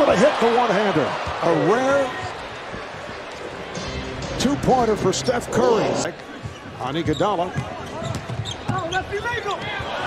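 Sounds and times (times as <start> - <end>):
voices in an arena: 0.0 - 10.0.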